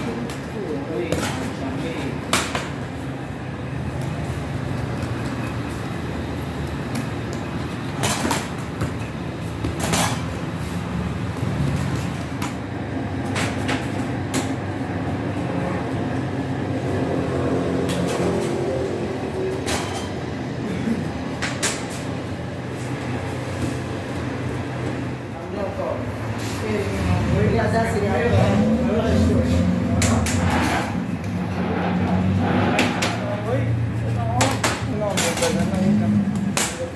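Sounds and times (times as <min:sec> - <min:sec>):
low mechanical hum: 0:00.0 - 0:36.9
dough scraper scraping table: 0:29.4 - 0:33.2.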